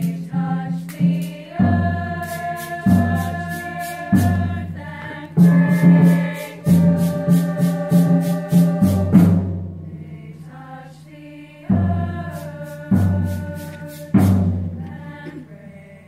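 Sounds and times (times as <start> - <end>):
girls' choir singing: 0.0 - 16.0.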